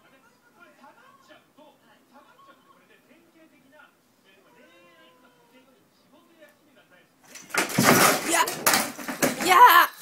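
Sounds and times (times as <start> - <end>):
lamp clattering and knocking: 7.3 - 9.8.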